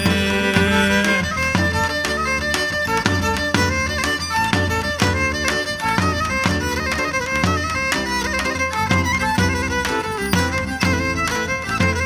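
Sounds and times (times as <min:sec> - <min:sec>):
band accompaniment: 0:00.0 - 0:12.0
bowed folk fiddle melody: 0:00.0 - 0:12.0
drum beat: 0:00.0 - 0:12.0.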